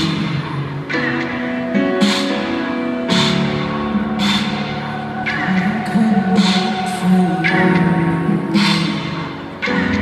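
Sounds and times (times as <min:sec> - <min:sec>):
live band playing in arena: 0:00.0 - 0:10.0.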